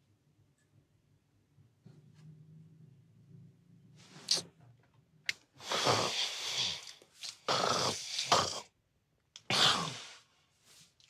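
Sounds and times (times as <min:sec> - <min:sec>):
man snoring: 0:05.7 - 0:06.8, 0:07.5 - 0:08.7.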